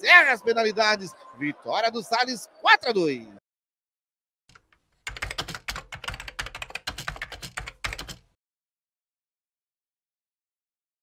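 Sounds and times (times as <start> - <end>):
computer keyboard typing: 4.5 - 8.3.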